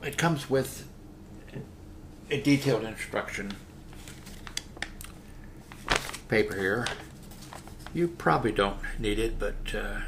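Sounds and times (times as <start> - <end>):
paper crinkling: 3.4 - 8.2.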